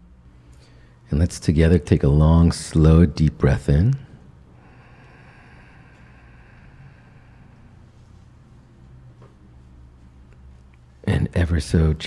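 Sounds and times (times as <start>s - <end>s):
low steady hum: 0.0s - 12.0s
slow deep in-breath: 0.3s - 1.1s, 4.1s - 9.0s.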